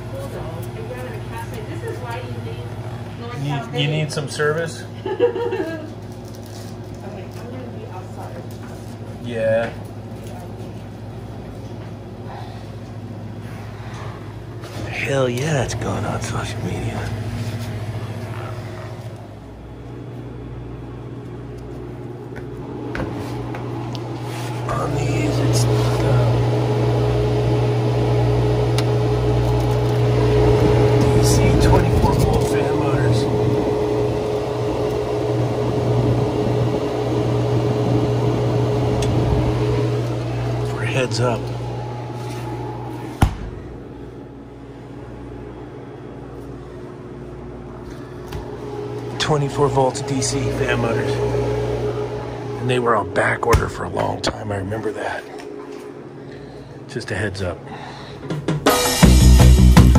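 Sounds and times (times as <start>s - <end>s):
refrigeration equipment humming: 0.0s - 59.9s
refrigerator door shutting: 43.2s - 43.7s.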